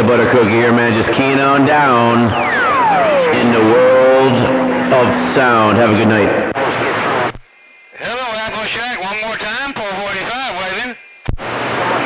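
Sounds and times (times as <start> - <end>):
radio static hiss: 0.0 - 12.0
man calling on cb radio: 3.3 - 6.4, 8.0 - 11.0
radio transmitter click: 7.2 - 7.5, 11.2 - 11.5.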